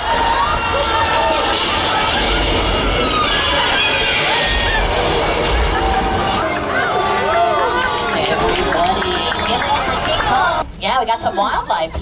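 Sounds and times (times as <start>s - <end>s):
excited voices: 0.0s - 10.6s
attraction soundtrack: 0.0s - 10.7s
deep rumble: 0.0s - 10.8s.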